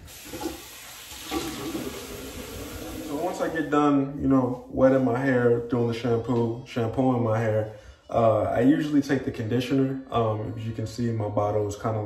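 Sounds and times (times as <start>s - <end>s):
sink tap running: 0.0s - 3.6s.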